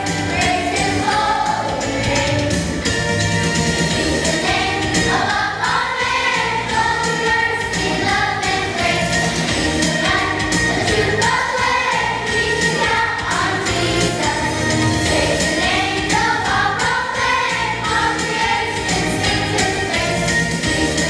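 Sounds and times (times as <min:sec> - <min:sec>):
children's choir singing: 0:00.0 - 0:03.0, 0:03.8 - 0:21.0
instrumental accompaniment with beat: 0:00.0 - 0:21.0.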